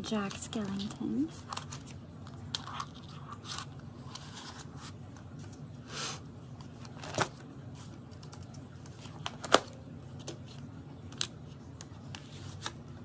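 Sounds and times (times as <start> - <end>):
plastic sleeves rustling: 0.0 - 5.7, 6.5 - 13.0.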